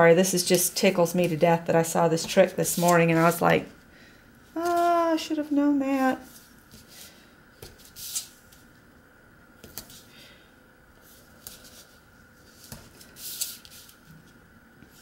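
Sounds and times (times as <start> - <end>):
paper rustling: 2.2 - 3.5, 11.2 - 14.4.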